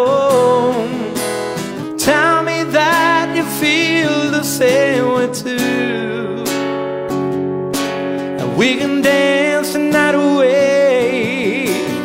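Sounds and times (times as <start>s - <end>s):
man singing: 0.0s - 6.8s, 8.4s - 12.0s
acoustic guitar strumming: 0.0s - 12.0s.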